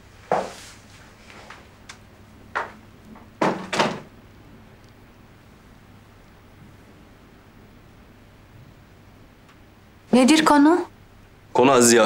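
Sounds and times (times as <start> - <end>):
wooden door shutting: 2.6 - 4.1.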